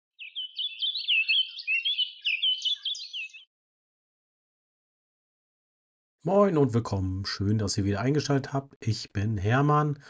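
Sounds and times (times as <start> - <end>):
songbird singing whistled notes: 0.2 - 3.5.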